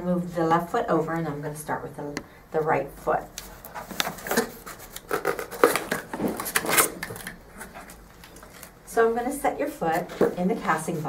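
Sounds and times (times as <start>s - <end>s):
cardboard scraping and knocking: 3.8s - 6.9s.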